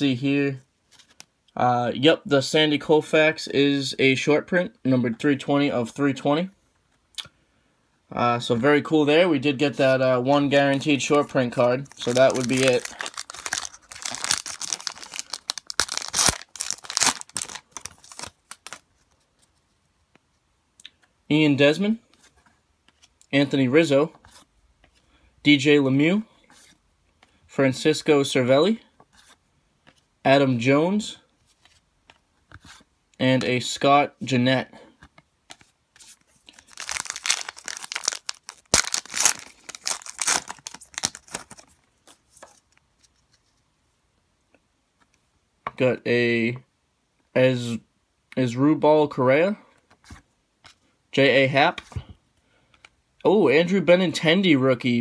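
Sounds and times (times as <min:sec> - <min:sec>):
wrapper tearing and crinkling: 0:11.9 - 0:18.9, 0:36.4 - 0:42.6.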